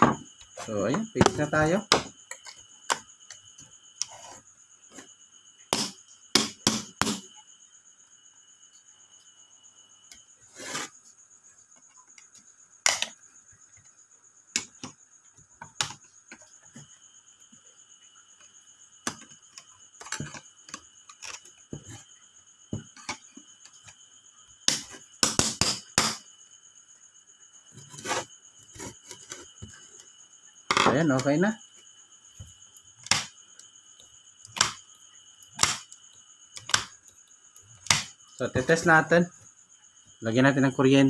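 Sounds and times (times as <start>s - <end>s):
crickets chirring: 0.0s - 41.0s.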